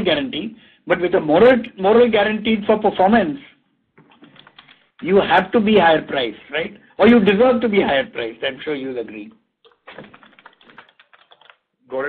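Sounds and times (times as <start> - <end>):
computer keyboard typing: 4.2 - 4.9, 9.7 - 11.6.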